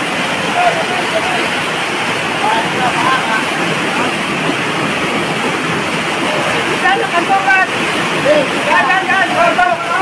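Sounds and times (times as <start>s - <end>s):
floodwater rushing: 0.0s - 10.0s.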